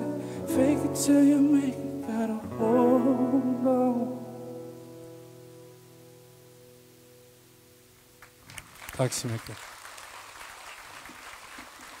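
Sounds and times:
audience clapping: 0:08.2 - 0:12.0.

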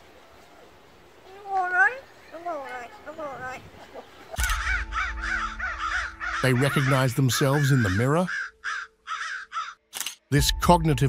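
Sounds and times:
crow mimicking human speech: 0:04.9 - 0:09.7.

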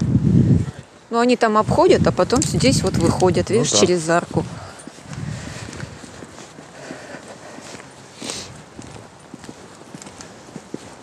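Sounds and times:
footsteps on wet paving: 0:02.2 - 0:11.0.

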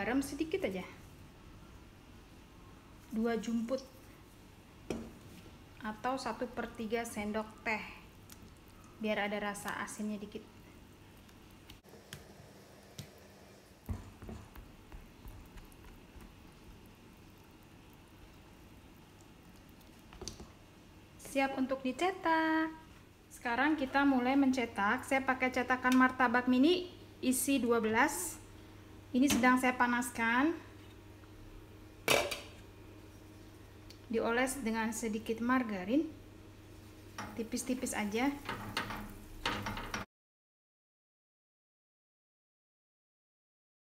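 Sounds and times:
whisk squishing batter: 0:13.8 - 0:20.2
metal kitchenware clatter: 0:38.2 - 0:40.1.

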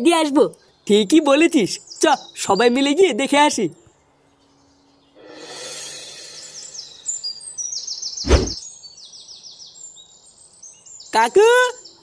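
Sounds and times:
birds chirping: 0:00.0 - 0:12.0
soft outdoor hiss: 0:00.0 - 0:12.0
loud thump: 0:08.2 - 0:08.6.

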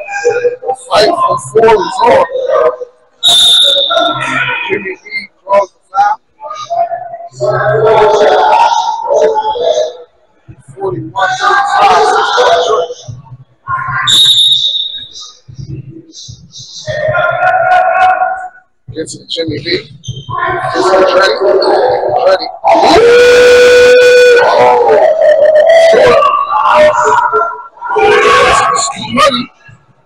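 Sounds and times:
players calling out: 0:00.0 - 0:29.8
referee's whistle: 0:03.2 - 0:04.6, 0:13.9 - 0:15.7.

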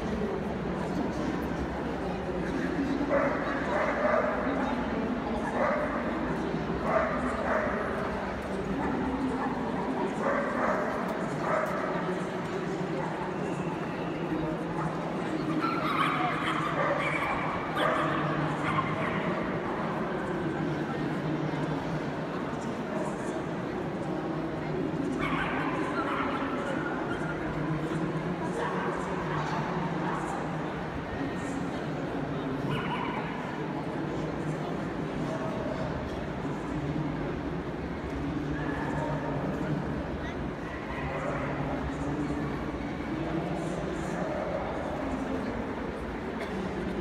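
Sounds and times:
murmur of crowd voices: 0:00.0 - 0:47.0
dogs barking and yapping: 0:15.6 - 0:19.4.

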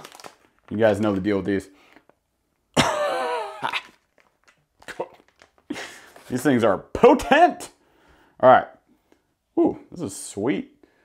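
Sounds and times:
packaging clicks: 0:00.0 - 0:00.8, 0:04.0 - 0:05.7.

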